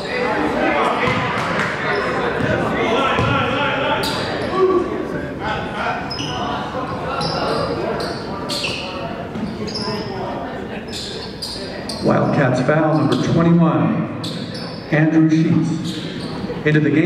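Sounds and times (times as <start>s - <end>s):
echoing voices in gym: 0.0s - 17.0s
basketball bouncing: 1.0s - 1.7s, 3.2s - 3.4s
sneakers squeaking on hardwood: 3.2s - 3.4s, 6.1s - 10.1s, 10.8s - 12.1s, 14.2s - 14.9s, 15.7s - 16.5s.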